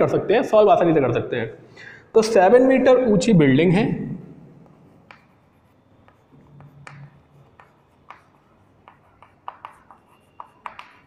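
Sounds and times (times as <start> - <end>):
chalk tapping and scratching on chalkboard: 4.6 - 11.0.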